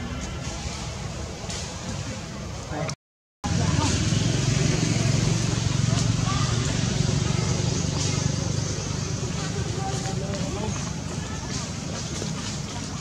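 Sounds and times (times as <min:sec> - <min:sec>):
outdoor background noise: 0:00.0 - 0:13.0
faint distant voices: 0:01.9 - 0:13.0.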